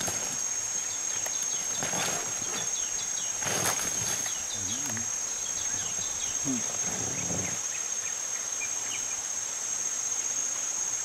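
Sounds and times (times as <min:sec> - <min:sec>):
high insect drone: 0:00.0 - 0:11.0.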